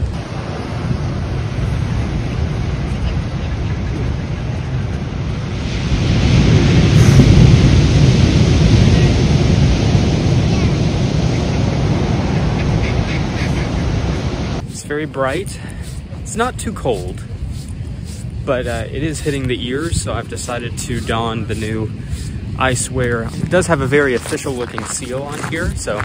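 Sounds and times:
ocean surf breaking: 0.0s - 26.0s
wind buffeting microphone: 0.0s - 26.0s.

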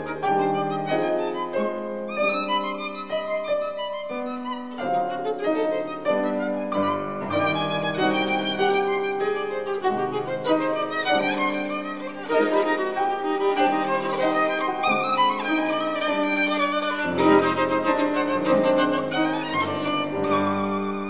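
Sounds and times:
piano accompaniment: 0.0s - 21.0s
violin melody with vibrato: 0.0s - 21.0s.

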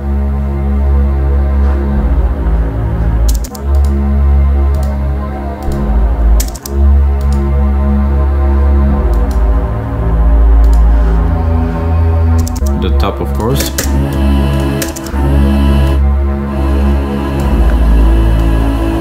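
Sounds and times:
deep low synth pad: 0.0s - 19.0s
mid-range synth pad: 0.0s - 19.0s
computer keyboard and mouse clicks: 3.3s - 4.0s, 4.7s - 5.0s, 6.4s - 7.4s, 9.1s - 9.4s, 10.6s - 10.9s, 12.4s - 12.7s.

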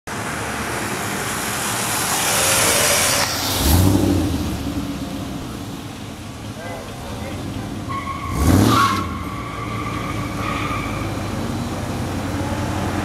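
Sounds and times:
racing cars passing at speed: 0.1s - 13.0s.

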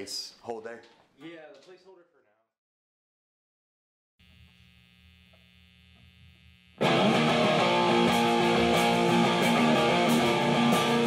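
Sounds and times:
guitar amplifier hum and buzz: 4.2s - 11.0s
band playing: 6.8s - 11.0s
strummed electric guitar: 6.8s - 11.0s.

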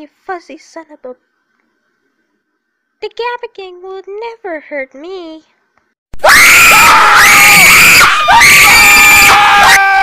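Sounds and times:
people screaming: 6.2s - 10.0s.

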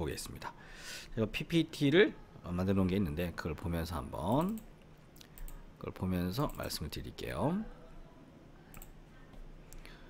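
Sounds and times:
low room hum: 0.0s - 10.0s
faint computer clicks: 4.3s - 5.6s, 8.7s - 9.0s.

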